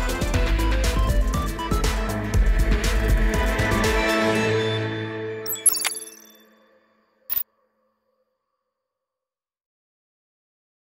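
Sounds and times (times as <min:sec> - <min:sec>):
sharp click: 0:05.5 - 0:06.2.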